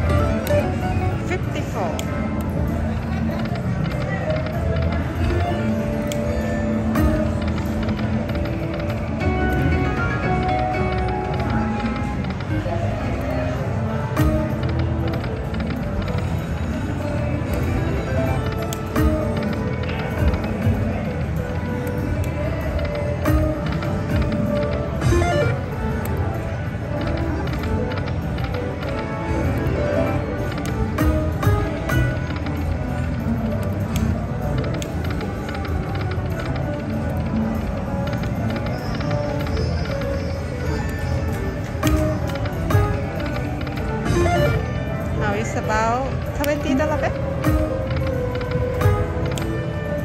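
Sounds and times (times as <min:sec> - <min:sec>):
casino crowd chatter: 0:00.0 - 0:50.0
clicking sound effects: 0:14.1 - 0:50.0.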